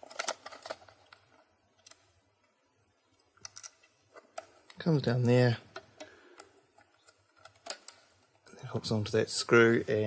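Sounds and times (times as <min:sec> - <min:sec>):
small plastic clicks: 0:03.1 - 0:04.8.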